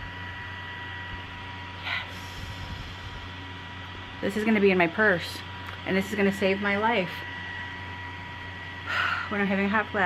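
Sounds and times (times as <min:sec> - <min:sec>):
handheld fan whirring: 0:00.0 - 0:10.0.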